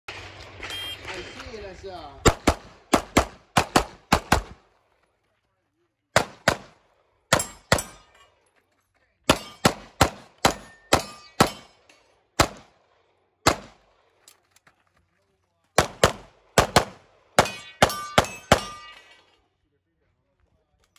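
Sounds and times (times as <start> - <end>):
voices: 0.4 - 2.3
handgun shots: 2.2 - 4.6, 6.2 - 8.1, 9.3 - 11.7, 12.4 - 12.7, 13.4 - 13.8
steel plate targets ringing: 7.3 - 8.4, 9.3 - 12.1, 17.4 - 19.4.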